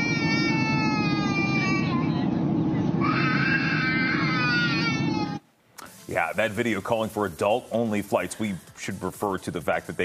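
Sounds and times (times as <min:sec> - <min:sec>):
baby crying: 0:00.0 - 0:02.3, 0:03.0 - 0:05.4
airliner cabin drone: 0:00.0 - 0:05.4.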